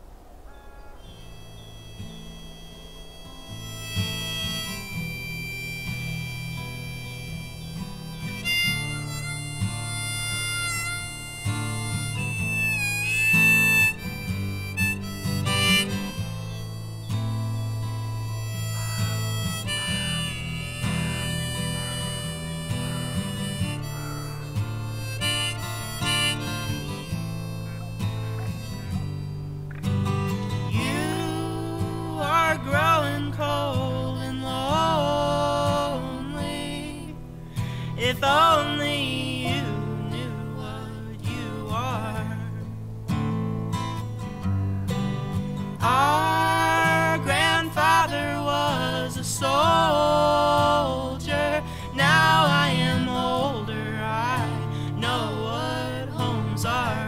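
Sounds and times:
harmonica melody with bent notes: 1.0 - 57.0
low instrumental accompaniment: 1.5 - 32.3.

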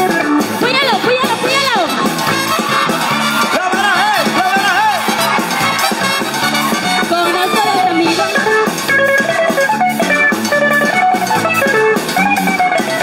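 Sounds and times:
upbeat instrumental band music: 0.0 - 13.0.

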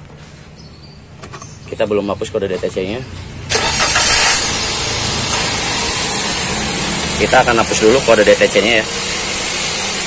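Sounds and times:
loud steady hiss: 3.5 - 10.0.

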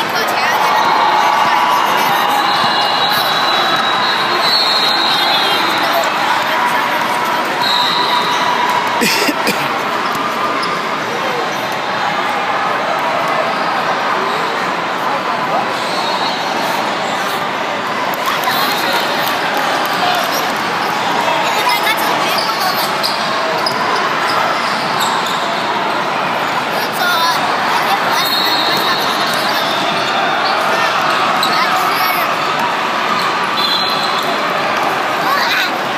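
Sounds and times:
hubbub of voices in a hall: 0.0 - 35.9.

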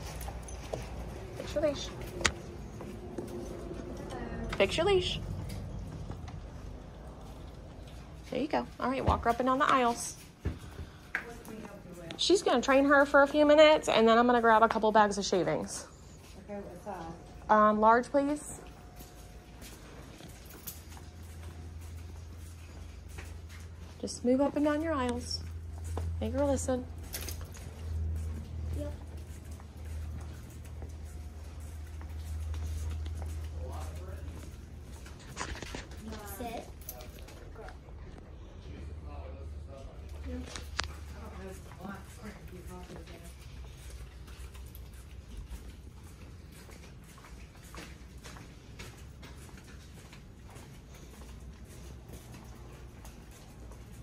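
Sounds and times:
child footsteps in sandals: 0.0 - 38.9, 39.8 - 54.0
steady low hum: 0.0 - 54.0
dog claws clicking on floor: 25.0 - 37.8, 40.4 - 54.0.

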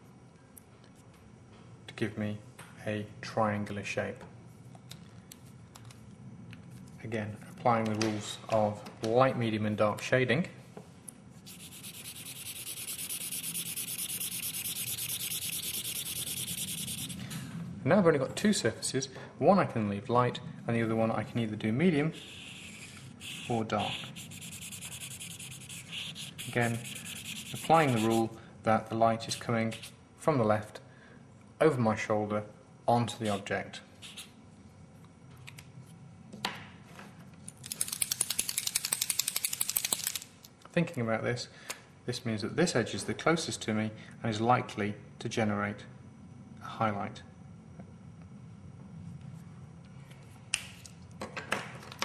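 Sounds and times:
felt marker rubbing on paper: 11.4 - 17.2, 22.2 - 28.3, 29.3 - 30.0, 34.0 - 34.3
fast light clicks or rattles: 37.6 - 40.3.

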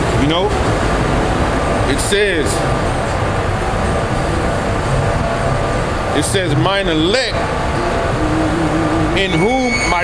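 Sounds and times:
city street traffic rumble: 0.0 - 10.0
faint hum: 0.0 - 10.0.

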